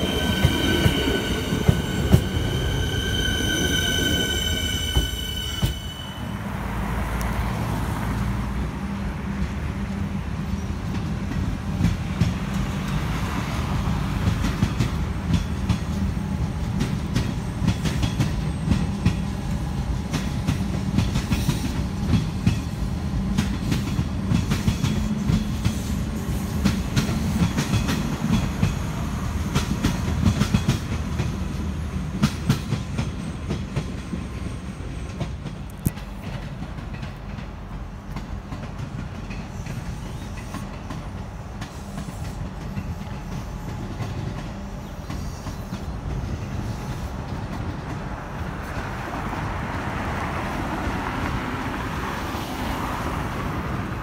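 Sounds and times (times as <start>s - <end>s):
train wheels clattering on rails: 0.0s - 6.3s, 9.2s - 52.6s
train cars rumbling: 0.0s - 54.0s.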